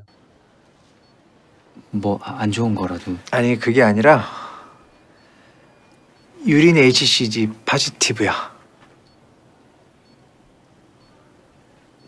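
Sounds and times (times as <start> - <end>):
faint high electronic beep: 0.0 - 0.4, 1.8 - 9.4, 11.0 - 12.0
faint hiss: 0.4 - 12.0.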